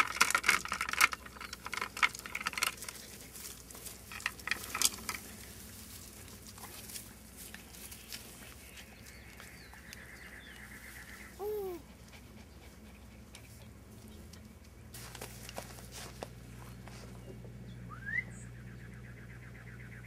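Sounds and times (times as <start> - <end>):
rustling and handling knocks: 0.0 - 7.0.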